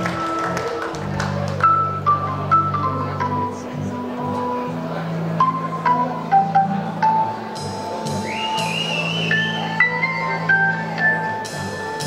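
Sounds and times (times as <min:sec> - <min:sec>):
electric organ playing: 0:00.0 - 0:12.0.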